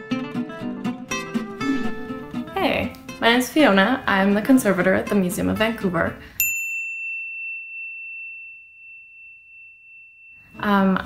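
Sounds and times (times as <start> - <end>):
high bell ding: 6.4 - 11.0.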